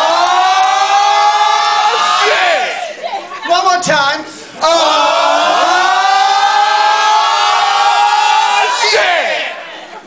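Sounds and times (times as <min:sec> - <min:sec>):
voices shouting along: 0:00.0 - 0:03.2, 0:04.6 - 0:09.7.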